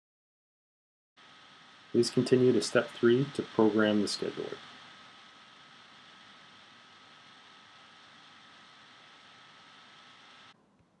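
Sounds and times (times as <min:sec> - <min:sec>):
faint hiss with high tone: 0:01.2 - 0:11.0.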